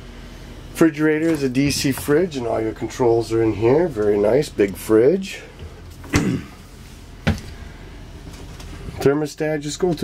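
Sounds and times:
steady low hum: 0:00.0 - 0:10.0
refrigerator door thump: 0:06.1 - 0:06.4, 0:07.2 - 0:07.6.

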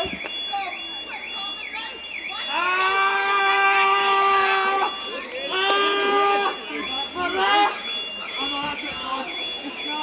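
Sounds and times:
scattered voices: 0:00.0 - 0:10.0
warbling siren: 0:00.0 - 0:10.0.

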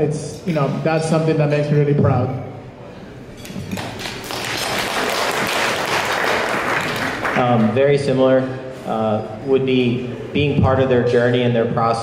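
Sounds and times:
audience applauding: 0:03.7 - 0:07.6.

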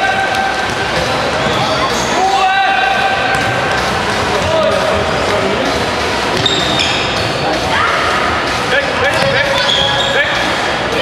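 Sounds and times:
echoing gym din: 0:00.0 - 0:11.0
shoes squeaking on floor: 0:06.3 - 0:07.5, 0:09.2 - 0:10.4.

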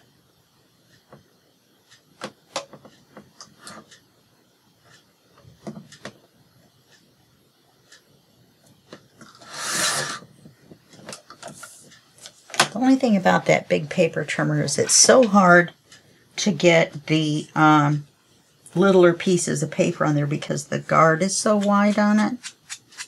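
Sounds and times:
paper trimmer cutting paper: 0:09.3 - 0:10.2.

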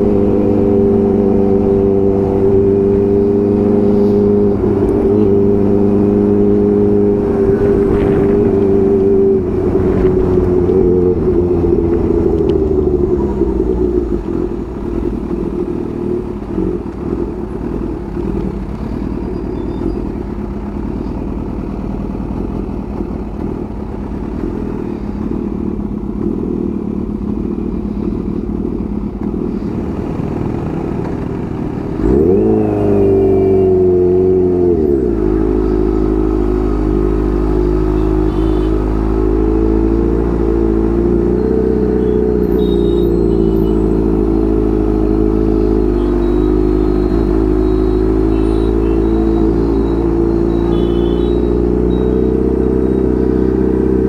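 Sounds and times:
motorcycle engine running and revving: 0:00.0 - 0:54.0.

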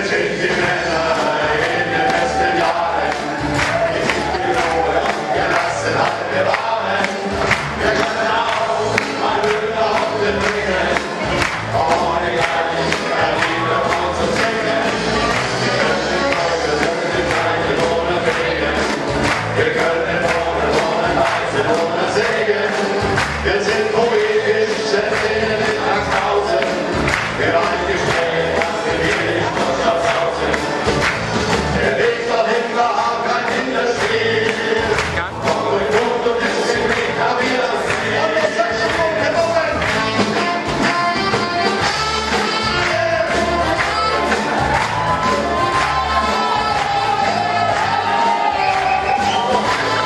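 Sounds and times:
band accompaniment: 0:00.0 - 0:50.0
men singing together: 0:00.0 - 0:50.0.

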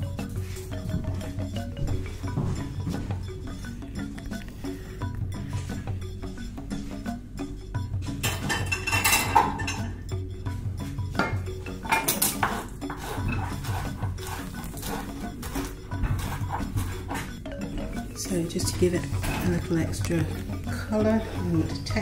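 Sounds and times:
background music: 0:00.0 - 0:22.0
utensils clinking on a plate: 0:08.0 - 0:22.0
knife on a plate: 0:11.8 - 0:17.3.

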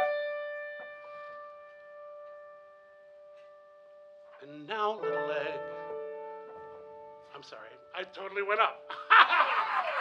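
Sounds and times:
piano chord ringing: 0:00.0 - 0:09.0.

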